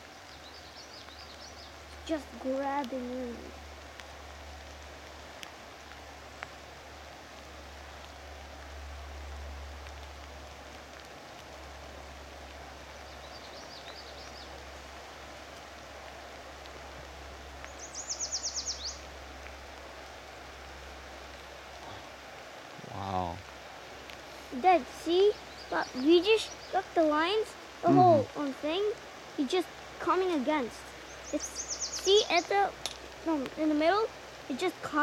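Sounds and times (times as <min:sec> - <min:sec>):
songbird trill: 0:00.0 - 0:03.6, 0:12.9 - 0:14.6, 0:17.6 - 0:19.1, 0:24.8 - 0:29.4, 0:30.3 - 0:34.1
faint bird chirps: 0:17.7 - 0:19.1, 0:25.0 - 0:27.1, 0:31.0 - 0:32.7.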